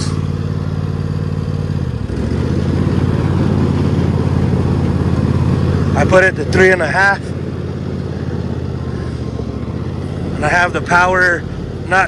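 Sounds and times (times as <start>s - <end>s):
riding mower engine running: 0.0s - 12.0s.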